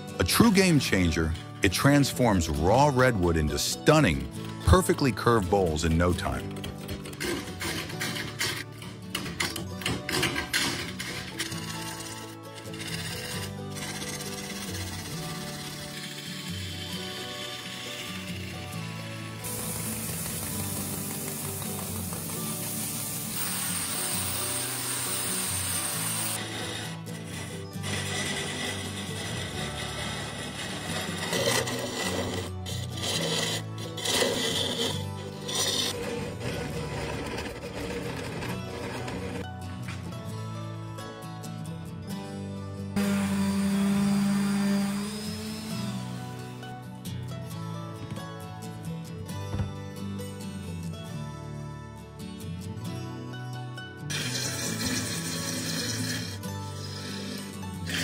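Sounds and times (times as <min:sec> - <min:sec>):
background music: 0:00.0 - 0:58.0
wood lathe turning: 0:03.6 - 0:39.4, 0:43.0 - 0:46.7, 0:54.1 - 0:58.0
gouge cutting spinning wood: 0:10.6 - 0:39.4, 0:43.0 - 0:46.6, 0:54.1 - 0:58.0.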